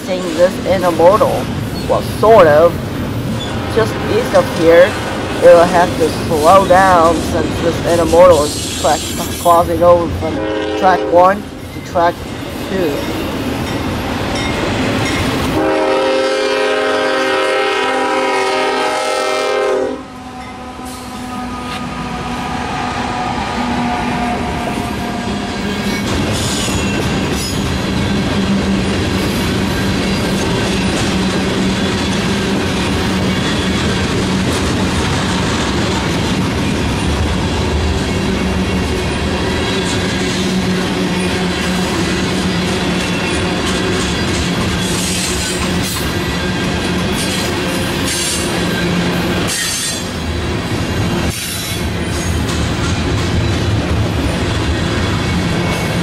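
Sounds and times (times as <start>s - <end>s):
freight train rumbling past: 0.0s - 56.0s
locomotive horn blast: 10.2s - 11.4s, 15.6s - 25.6s.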